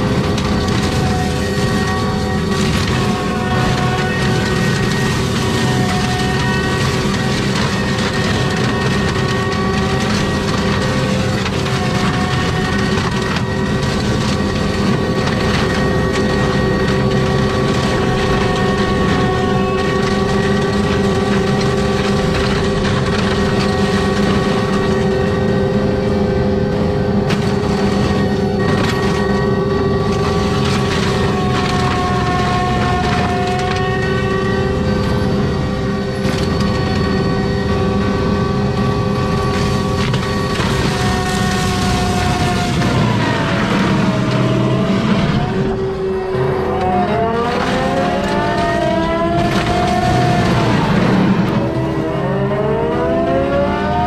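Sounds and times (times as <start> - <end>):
brush crackling and splintering: 0.0 - 52.6
forestry mulcher engine drone: 0.0 - 54.0.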